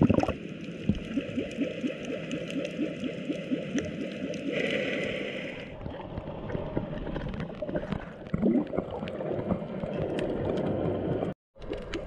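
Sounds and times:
water gurgling underwater: 0.0s - 4.9s, 5.7s - 12.0s.

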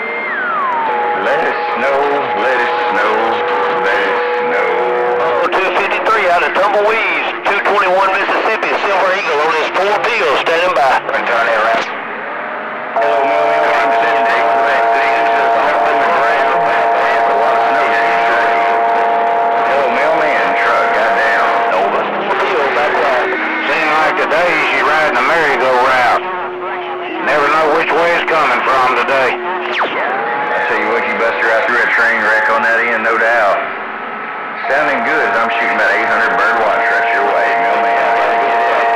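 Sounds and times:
distorted voices over radio: 0.0s - 12.0s, 13.0s - 33.8s, 34.5s - 38.9s
steady whining tones: 0.0s - 38.9s.

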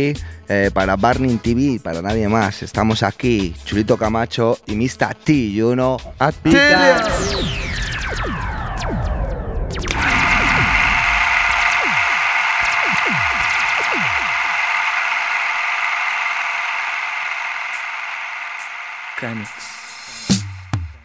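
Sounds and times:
falling pitch sweeps: 6.5s - 14.8s.

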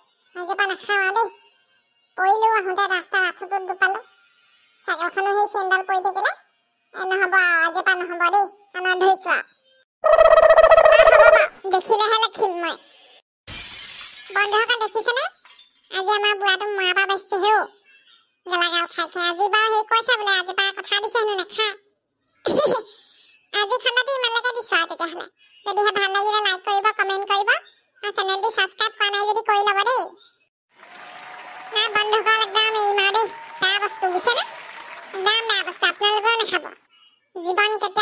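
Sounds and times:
high-pitched cartoon character voice: 10.1s - 12.8s
cartoon character speaking: 23.6s - 30.2s.

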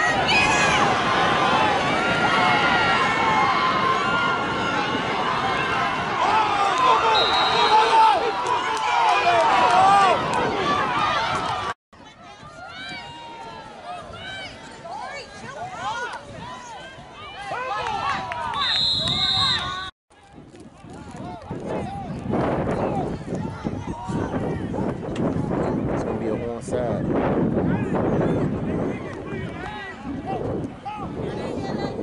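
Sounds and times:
spectators shouting and cheering: 0.0s - 19.9s, 27.6s - 32.0s
referee's whistle: 7.0s - 8.0s, 18.5s - 19.9s.

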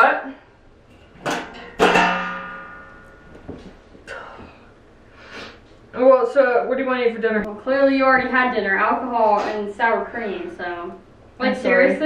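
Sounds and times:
metal tray clanking and ringing: 1.2s - 3.3s.

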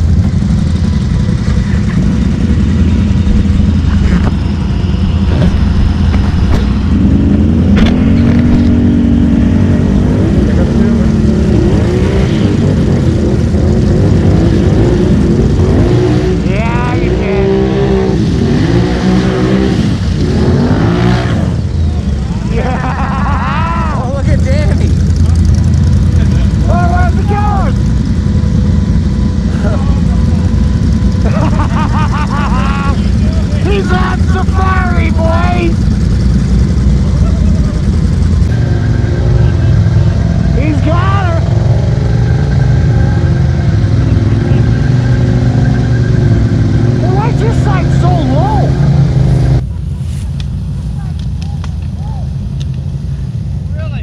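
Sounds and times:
atv engine revving in mud: 0.0s - 21.8s, 27.8s - 49.7s.

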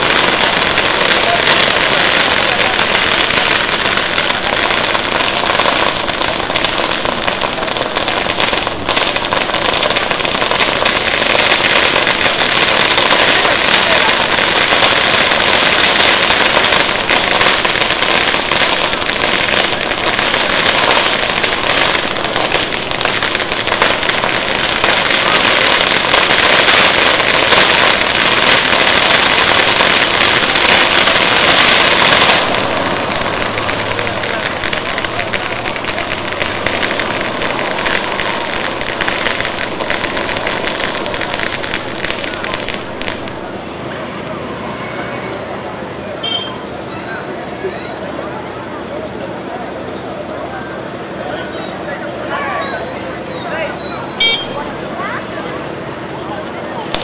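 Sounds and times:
fireworks crackling: 0.0s - 57.0s.

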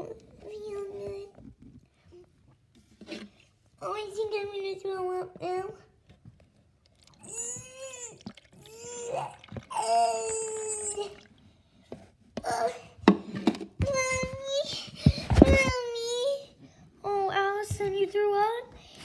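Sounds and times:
girl making retching noises: 7.1s - 11.2s.

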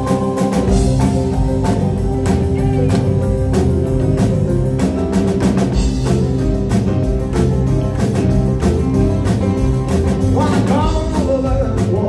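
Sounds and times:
drum kit steady beat: 0.0s - 12.0s
electric guitar: 0.0s - 12.0s
keyboards: 0.0s - 12.0s.

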